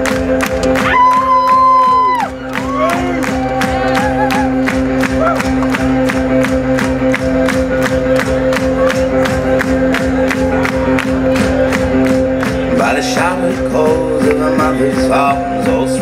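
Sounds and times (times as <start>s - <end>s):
crowd noise: 0.0s - 16.0s
live synth-pop band playing: 0.0s - 16.0s.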